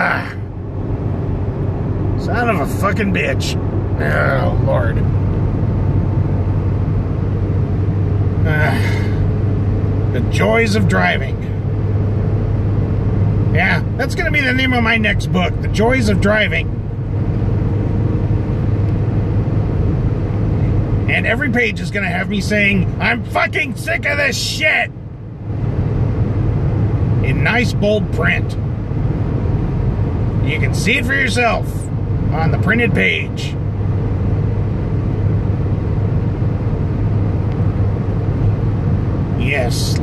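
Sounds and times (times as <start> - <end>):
car engine and tyre rumble: 0.0 - 40.0.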